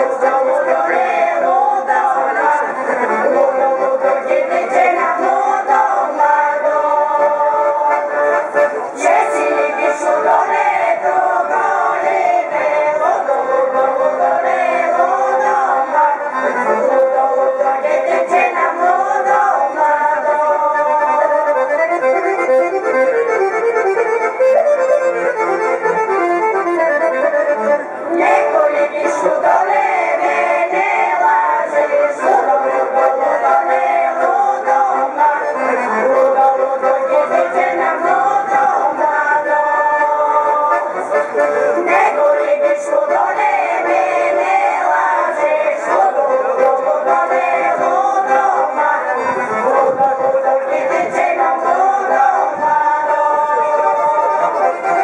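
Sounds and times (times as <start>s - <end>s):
accordion playing folk melody: 0.0s - 55.0s.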